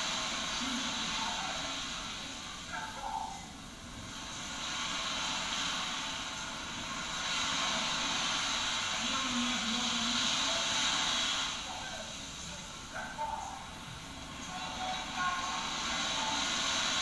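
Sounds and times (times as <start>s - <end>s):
faint voices: 0.0s - 3.7s, 7.3s - 17.0s
surf washing on a beach: 0.0s - 17.0s.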